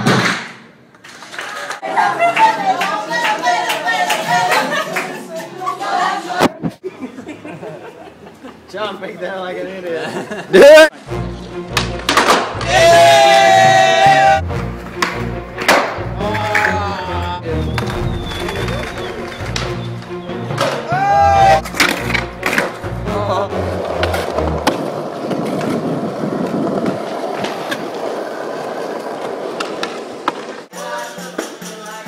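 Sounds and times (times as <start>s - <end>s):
skateboard rolling on stone: 17.7s - 20.9s, 23.6s - 30.7s.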